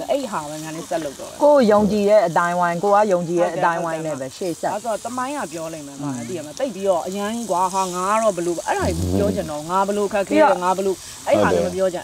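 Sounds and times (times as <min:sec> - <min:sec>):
faint steady hiss: 0:00.0 - 0:12.0
people talking: 0:00.0 - 0:12.0.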